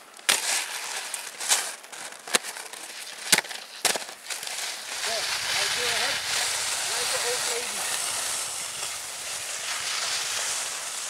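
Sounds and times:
skis scraping on snow: 0.0s - 11.0s.

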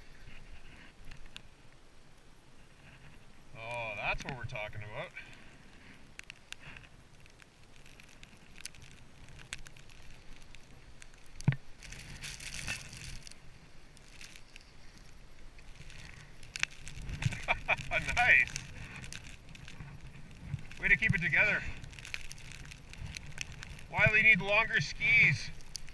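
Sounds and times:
skis sliding on snow: 0.0s - 1.7s, 2.5s - 25.9s.

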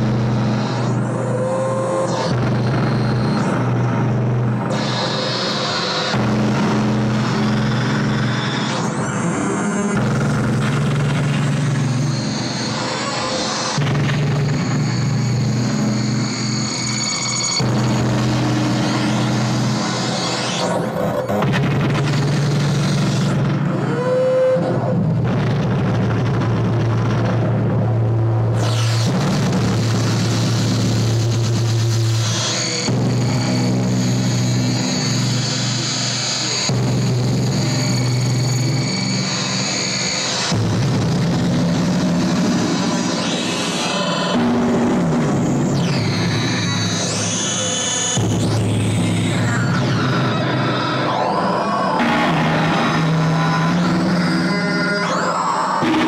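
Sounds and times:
dense noisy layer: 0.0s - 56.0s
synthesizer drones: 0.0s - 56.0s.

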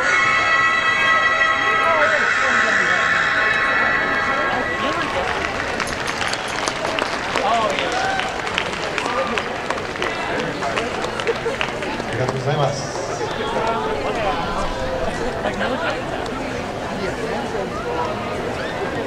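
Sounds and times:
audience murmuring and chattering: 0.0s - 19.0s.

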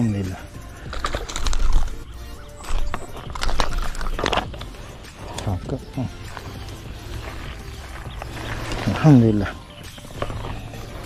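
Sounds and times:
music: 0.0s - 11.0s
fish flopping on gravel: 0.8s - 5.4s, 6.2s - 11.0s.

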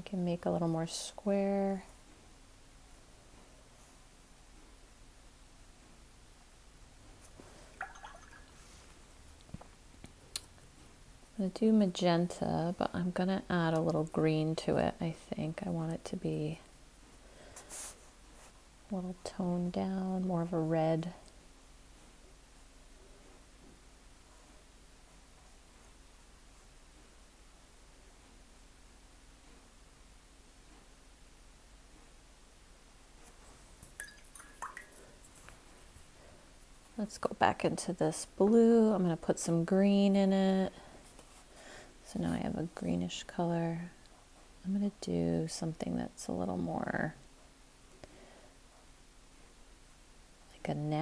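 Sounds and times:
faint water splash: 7.8s - 8.6s, 33.8s - 35.2s.

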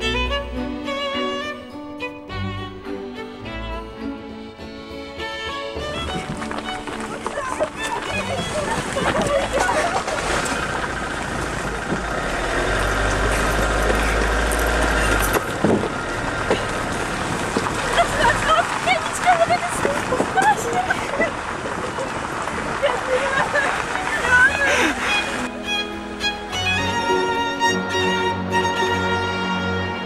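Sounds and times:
van engine rumble: 0.0s - 30.0s
voices calling out: 6.1s - 25.5s.

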